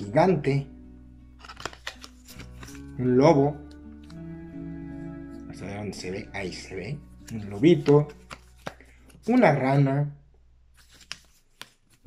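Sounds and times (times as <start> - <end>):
quiet background music: 0.0 - 12.0
cards clicking and sliding: 1.3 - 3.0, 3.6 - 4.2, 7.1 - 9.7, 10.8 - 12.0.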